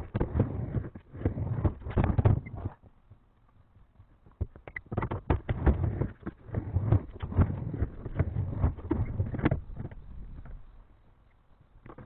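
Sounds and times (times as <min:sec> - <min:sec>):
skateboard clack: 0:00.0 - 0:10.7
skateboard wheels rolling on plywood: 0:00.0 - 0:12.0.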